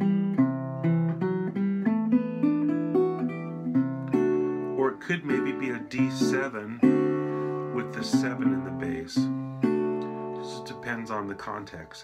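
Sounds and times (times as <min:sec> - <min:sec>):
resonator guitar picked chord: 0:00.0 - 0:12.0.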